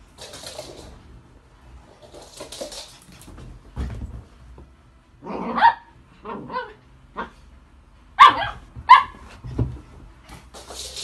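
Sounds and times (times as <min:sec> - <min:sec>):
dog barking sharply: 0:08.2 - 0:09.2.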